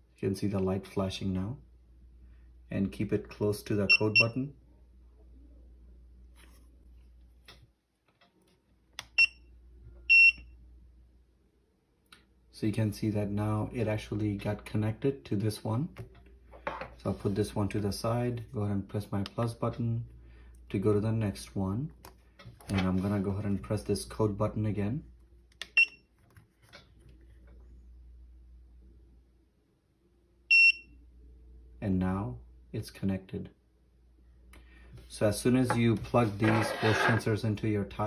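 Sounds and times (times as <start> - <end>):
low steady hum: 0.0 - 38.0.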